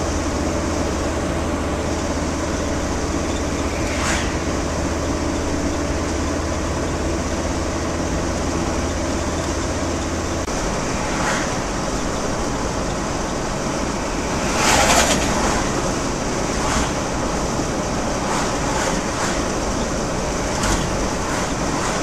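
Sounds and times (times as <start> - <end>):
road and engine noise inside van: 0.0 - 22.0
passing car whoosh: 3.1 - 5.9, 10.5 - 22.0.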